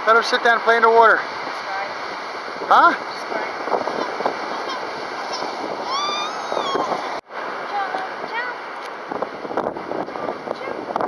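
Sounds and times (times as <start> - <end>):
wind: 0.0 - 11.0
baby crying: 5.8 - 7.2.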